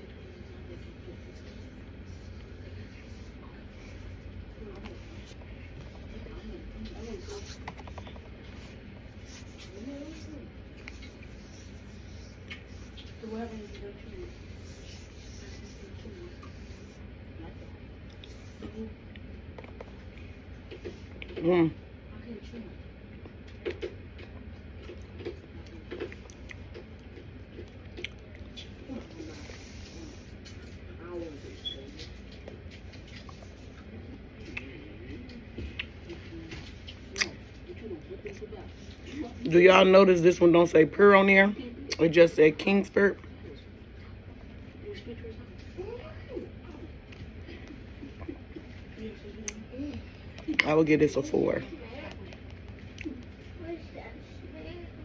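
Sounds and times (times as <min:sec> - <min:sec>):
low steady hum: 0:00.0 - 0:55.0
chewing corn starch: 0:23.0 - 0:30.9, 0:31.6 - 0:39.6, 0:52.1 - 0:53.5.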